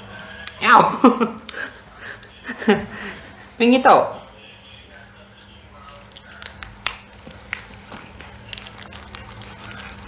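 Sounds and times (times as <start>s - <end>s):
chewing: 1.4s - 3.6s, 4.4s - 10.0s
small clicks and snaps: 6.1s - 9.6s.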